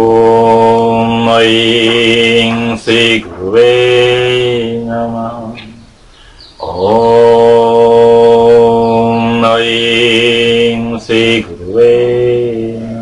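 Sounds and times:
man chanting on one pitch: 0:00.0 - 0:05.9, 0:06.6 - 0:13.0.

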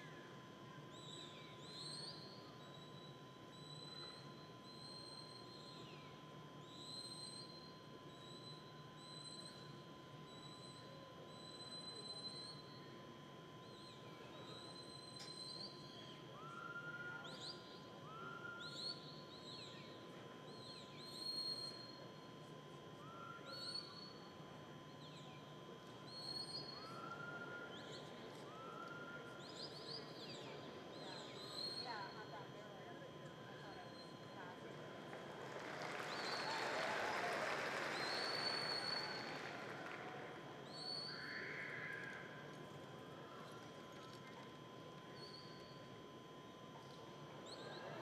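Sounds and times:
high herding whistles: 0:35.1 - 0:42.1.

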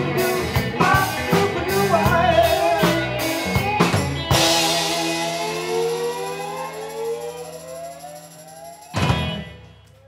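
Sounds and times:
blues band chord ringing: 0:02.1 - 0:10.0
sustained note sliding upward: 0:04.6 - 0:09.0.

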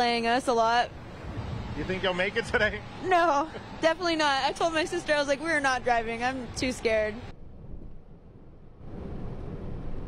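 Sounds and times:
vehicle and road rumble: 0:00.0 - 0:10.0.

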